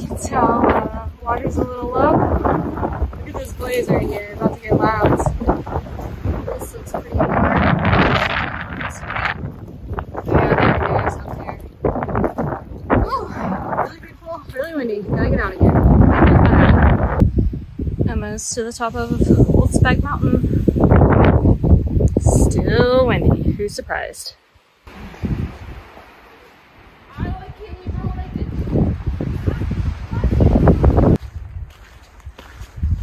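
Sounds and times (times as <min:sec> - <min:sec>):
gusty wind buffeting microphone: 0:00.0 - 0:33.0.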